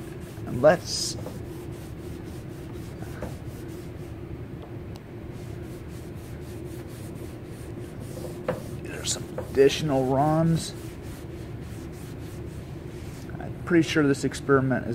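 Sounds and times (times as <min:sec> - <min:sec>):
cloth rag rubbing car panel: 0:00.0 - 0:04.2, 0:05.3 - 0:13.3
steady low hum: 0:00.0 - 0:14.9.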